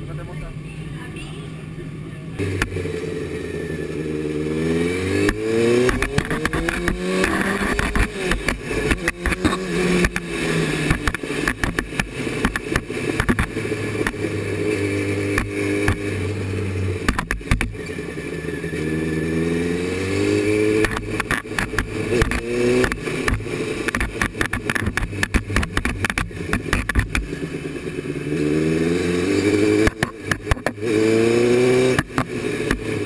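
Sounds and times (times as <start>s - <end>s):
buggy engine revving: 0.0s - 33.0s
sharp rattles and knocks: 5.2s - 14.3s, 17.0s - 18.0s, 20.7s - 27.3s.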